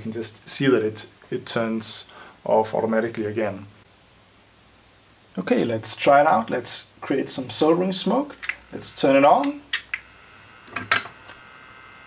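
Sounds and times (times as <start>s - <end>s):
small fan whining: 5.8s - 12.0s.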